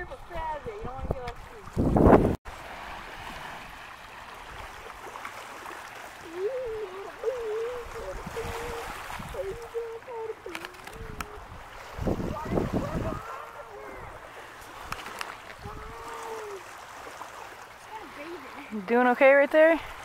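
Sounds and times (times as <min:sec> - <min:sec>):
wind and lake water hiss: 0:00.0 - 0:20.0
high wavering voice: 0:06.2 - 0:11.5.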